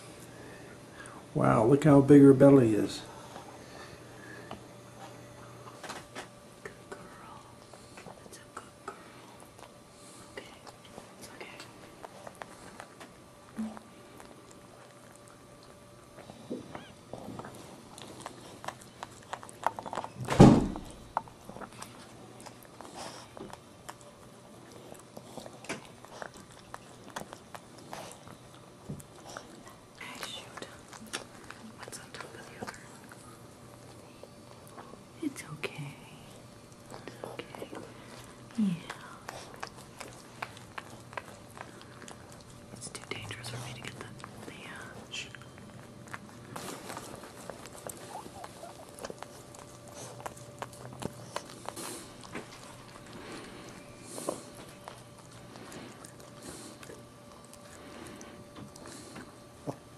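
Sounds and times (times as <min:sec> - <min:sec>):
dog licking with wet clicks: 0:17.4 - 0:34.9, 0:36.4 - 0:59.9.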